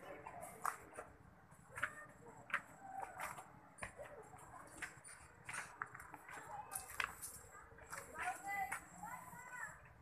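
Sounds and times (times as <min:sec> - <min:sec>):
footsteps on stone path: 0:00.0 - 0:10.0.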